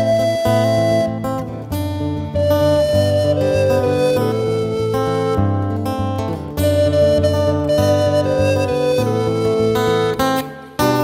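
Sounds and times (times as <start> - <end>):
acoustic guitar accompaniment: 0.0 - 11.0
recorder playing slow melody: 0.0 - 11.0.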